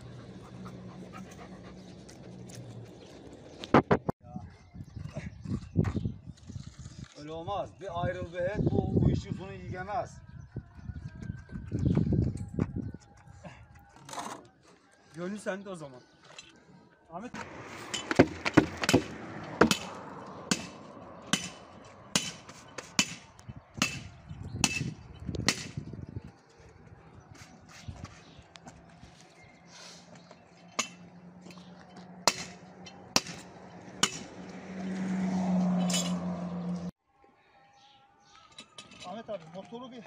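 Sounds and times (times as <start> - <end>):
sharp construction knocks: 17.9 - 23.2.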